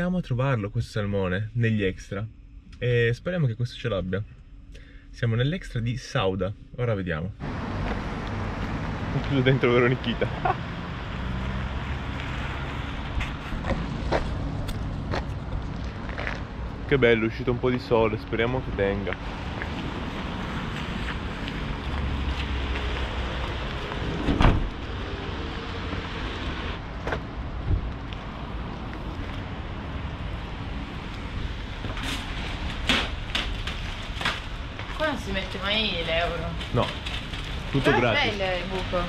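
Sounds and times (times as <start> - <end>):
outdoor car park noise: 5.7 - 39.0
sliding van door slamming: 24.2 - 24.8.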